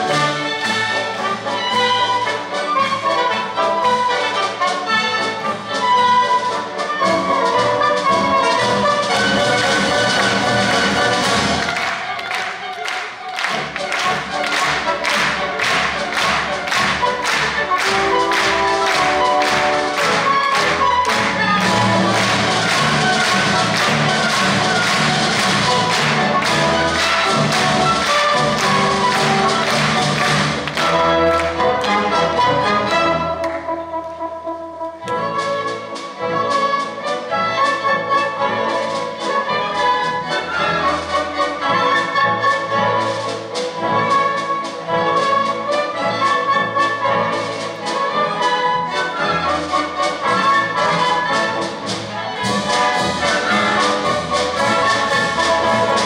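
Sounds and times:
orchestra strings and brass: 0.0s - 56.0s.

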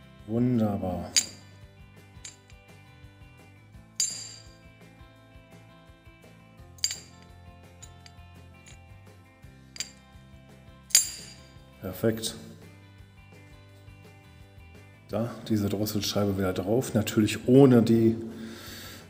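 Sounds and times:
faint background music: 0.0s - 19.0s
metal plate clinking in housing: 1.1s - 1.5s, 4.0s - 4.6s, 6.8s - 8.8s, 10.9s - 11.5s.

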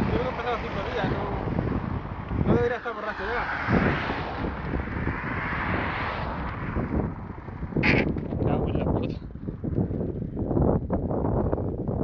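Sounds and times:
car passing: 0.0s - 10.6s
wind buffeting microphone: 0.0s - 12.0s.

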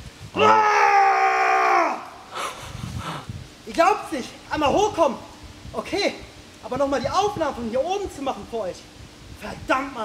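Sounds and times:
man shouting: 0.4s - 2.1s.

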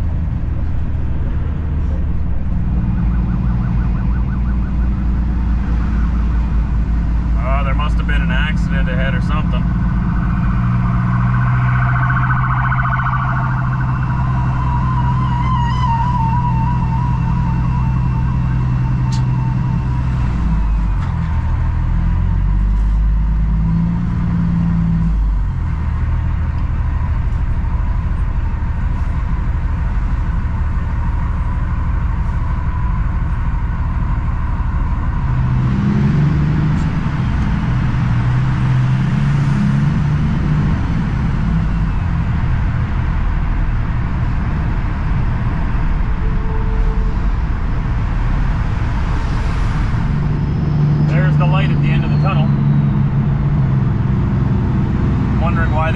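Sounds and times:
road noise: 0.0s - 55.9s
truck diesel engine running: 0.0s - 55.9s
thin warbling tone: 8.4s - 20.6s.

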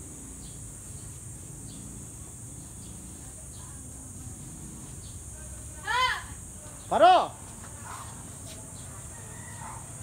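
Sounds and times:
distant rooster crowing: 8.8s - 10.0s.

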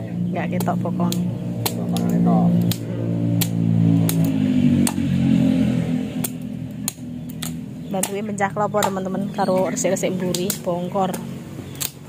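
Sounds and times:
low steady hum: 0.0s - 12.0s
machete striking coconut shells: 0.6s - 5.6s, 6.2s - 9.4s, 10.3s - 12.0s.

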